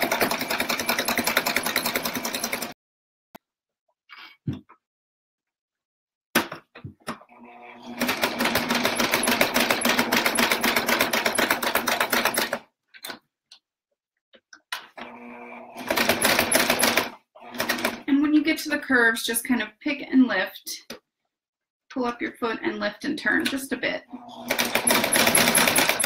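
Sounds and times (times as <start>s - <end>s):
sewing machine stitching: 0.0s - 2.8s, 7.3s - 12.6s, 14.9s - 18.1s, 24.1s - 26.0s
sewing machine clicks: 24.4s - 26.0s.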